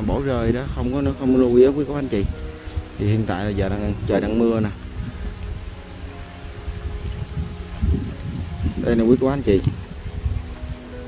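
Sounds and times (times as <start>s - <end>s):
light rain hissing: 0.0s - 11.0s
low wind rumble: 0.0s - 11.0s
microphone handling noise: 6.8s - 10.8s.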